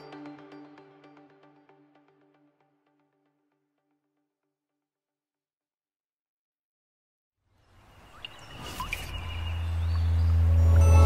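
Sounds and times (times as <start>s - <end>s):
bird-like chirps: 7.6s - 11.0s.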